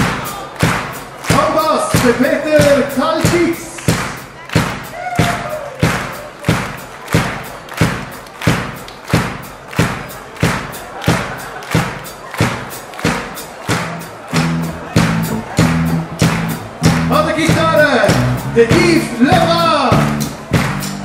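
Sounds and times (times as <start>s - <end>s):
drum kit steady beat: 0.0s - 21.0s.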